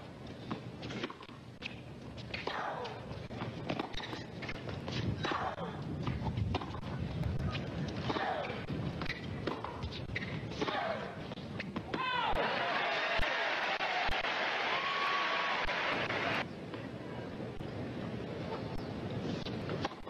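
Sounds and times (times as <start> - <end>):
shoes squeaking on court: 0.4 - 5.4, 6.0 - 11.9
crowd applauding: 12.4 - 16.4.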